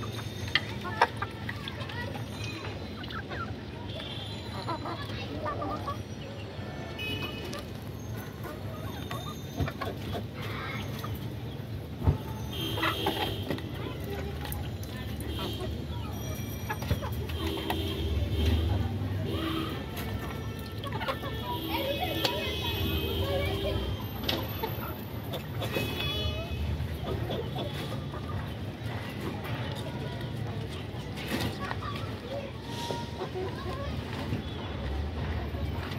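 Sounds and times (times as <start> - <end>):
hens clucking: 0.0 - 3.8, 4.5 - 34.6.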